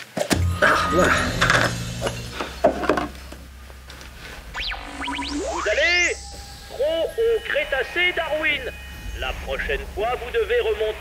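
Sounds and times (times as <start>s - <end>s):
background music with drone: 0.3s - 11.0s
swooping tones: 0.3s - 11.0s.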